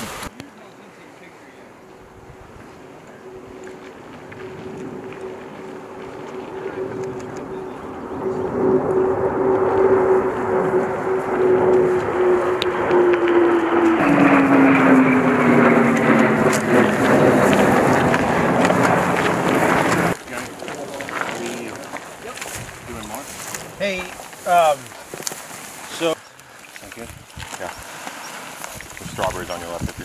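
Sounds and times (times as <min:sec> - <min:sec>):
aircraft flying low overhead: 0:01.5 - 0:26.3.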